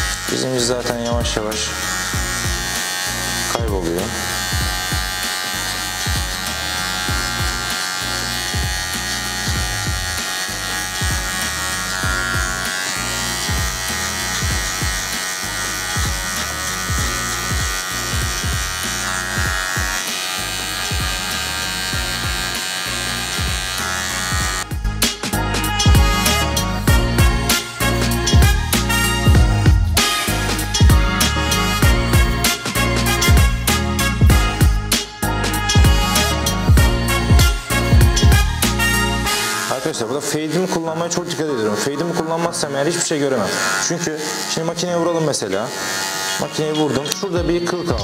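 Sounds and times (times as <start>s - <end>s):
background music with steady beat: 0.0s - 39.9s, 47.2s - 48.0s
electric hair clipper buzzing: 0.0s - 48.0s.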